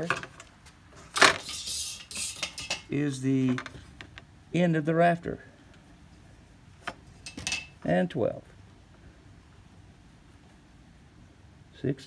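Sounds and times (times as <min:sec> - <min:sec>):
metal scraping on wood: 0:01.0 - 0:02.9.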